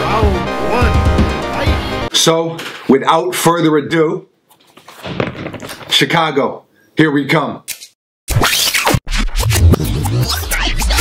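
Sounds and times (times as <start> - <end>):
music: 0.0 - 2.1, 9.1 - 11.0
scratching fast-forward sound effect: 8.3 - 11.0.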